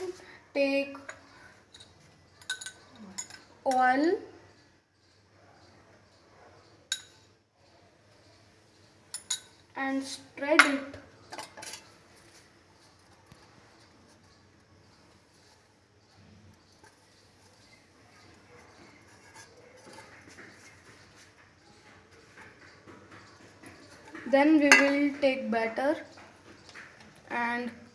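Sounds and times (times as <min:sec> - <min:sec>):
faint room noise: 0:00.0 - 0:27.9
spoon clinking against dish: 0:01.0 - 0:03.5, 0:06.9 - 0:07.3, 0:09.1 - 0:09.6, 0:23.2 - 0:25.1
metal container clicking and rubbing: 0:11.2 - 0:21.3.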